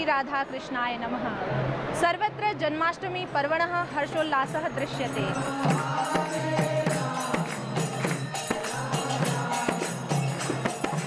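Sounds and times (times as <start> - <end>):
percussion strikes: 3.9 - 11.0
group devotional chanting: 4.8 - 11.0.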